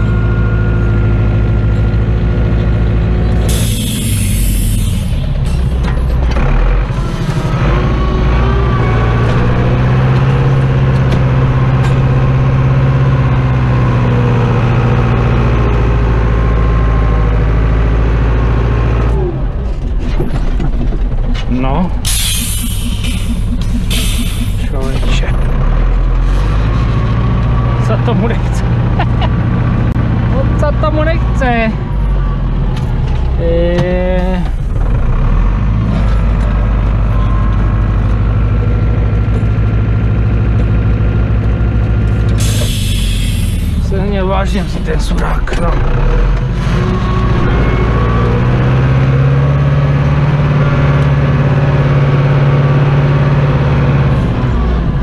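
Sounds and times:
tractor diesel engine running: 0.0s - 55.0s
loud hissing burst: 3.5s - 5.7s, 22.0s - 25.0s, 42.4s - 43.9s
short wavering squeals: 22.0s - 25.0s.

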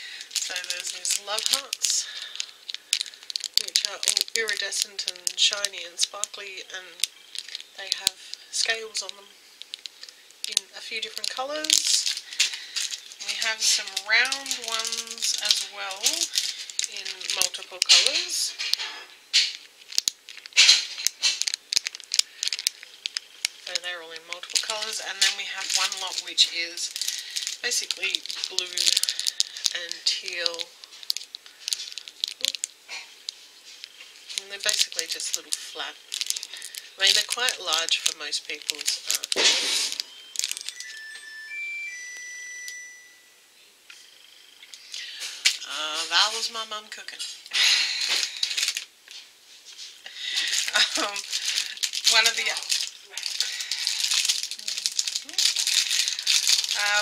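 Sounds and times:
plastic packet crinkling: 0.0s - 41.5s, 44.6s - 57.0s
light clicks of small pieces: 0.3s - 6.4s, 7.0s - 23.8s, 27.0s - 40.8s
kitchen appliance beeping: 40.0s - 43.4s
faint single tone: 40.0s - 44.1s.

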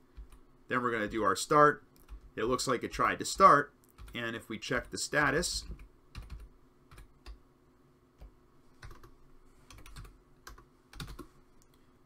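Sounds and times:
keyboard typing clicks: 9.7s - 11.3s.

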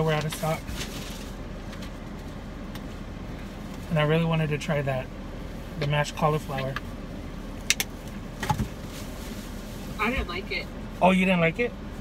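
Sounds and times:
car cabin hum: 0.0s - 12.0s.

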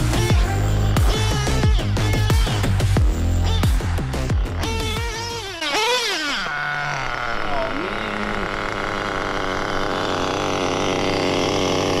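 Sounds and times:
glow-fuel engine idling: 6.9s - 12.0s.

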